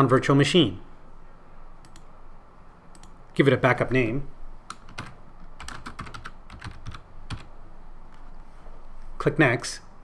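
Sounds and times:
typing on computer keyboard: 4.7s - 7.5s.

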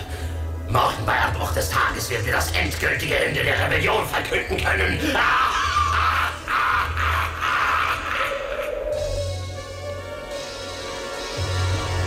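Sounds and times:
cartoon villain evil laughter: 5.0s - 9.2s.

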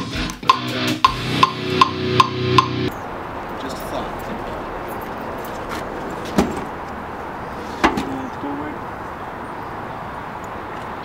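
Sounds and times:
outdoor background noise: 1.4s - 11.0s
luggage knocking in truck bed: 6.2s - 6.7s.

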